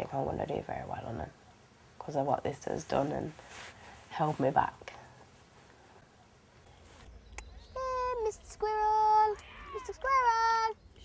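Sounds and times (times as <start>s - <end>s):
girl singing long notes: 7.6s - 10.8s.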